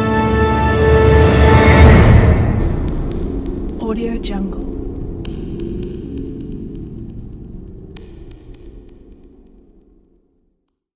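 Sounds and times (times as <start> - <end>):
low soundtrack drone: 0.0 - 10.5.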